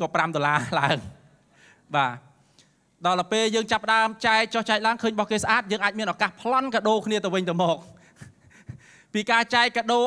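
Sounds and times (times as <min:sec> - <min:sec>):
man speaking into microphone: 0:00.0 - 0:01.3, 0:01.9 - 0:02.4, 0:03.0 - 0:10.0
faint breathing: 0:01.4 - 0:02.9, 0:07.9 - 0:09.2.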